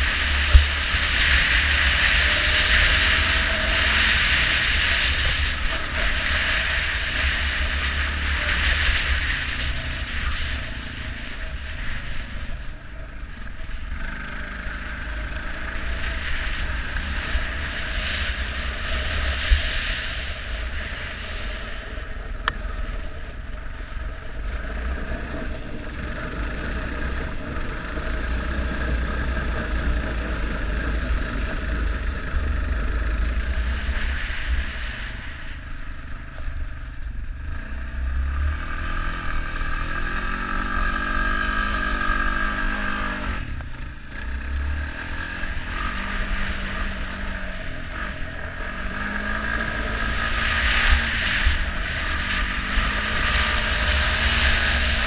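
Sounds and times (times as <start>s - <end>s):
atv engine running: 0.0s - 55.0s
wind rumbling on microphone: 0.0s - 55.0s.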